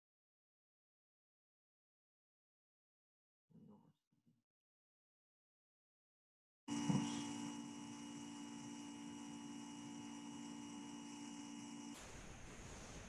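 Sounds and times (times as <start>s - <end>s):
electrical hum with high whine: 6.7s - 13.0s.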